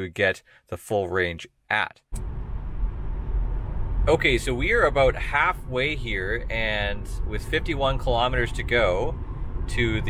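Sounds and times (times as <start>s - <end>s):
car road noise rumble: 2.2s - 10.0s.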